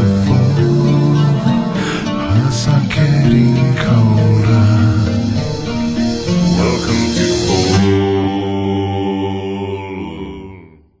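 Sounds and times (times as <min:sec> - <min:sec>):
sustained metal guitar chord: 0:00.0 - 0:10.3.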